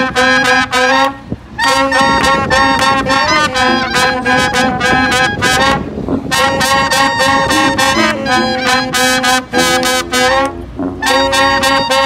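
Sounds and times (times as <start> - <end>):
brass band playing jazz: 0.0 - 12.0.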